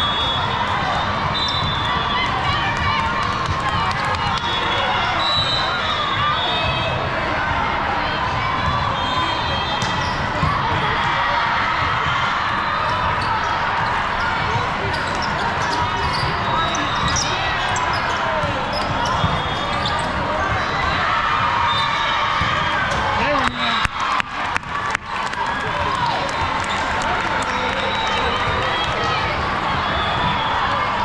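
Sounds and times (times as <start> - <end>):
many voices talking and calling: 0.0 - 31.0.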